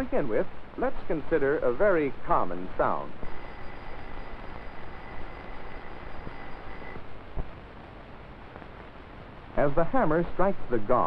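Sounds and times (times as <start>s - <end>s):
electric bell ringing: 3.3s - 7.0s.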